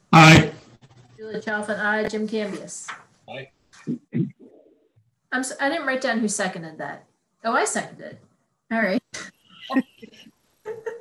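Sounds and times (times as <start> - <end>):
people talking on a video call: 0.0 - 11.0.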